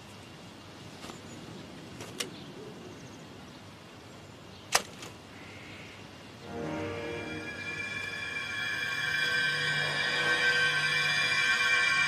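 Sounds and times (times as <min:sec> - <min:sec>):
faint forest background: 0:00.0 - 0:12.0.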